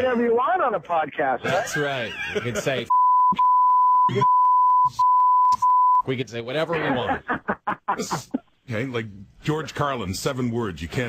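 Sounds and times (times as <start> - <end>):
censor bleep: 2.9 - 6.1
man's voice: 8.0 - 11.0.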